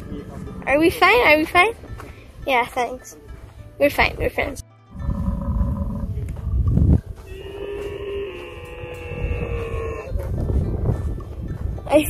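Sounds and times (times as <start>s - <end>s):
wind rumbling on microphone: 0.0s - 1.9s, 5.0s - 12.0s
herders calling: 7.2s - 10.2s.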